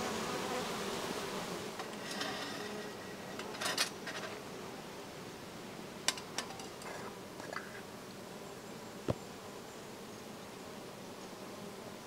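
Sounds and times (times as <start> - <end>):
faint insect buzzing: 0.0 - 12.0.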